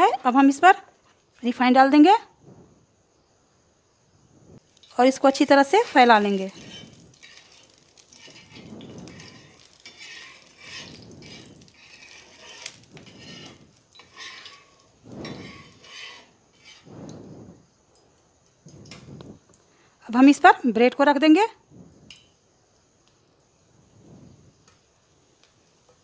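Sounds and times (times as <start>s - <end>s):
metal utensil scraping griddle: 5.2s - 17.2s.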